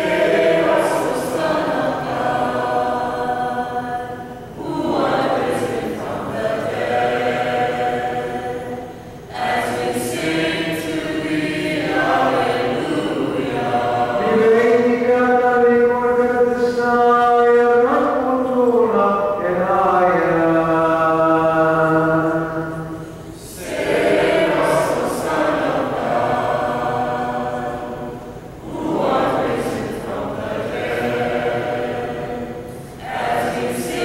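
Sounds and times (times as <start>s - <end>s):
group chanting in unison: 0.0s - 15.8s, 20.1s - 34.0s.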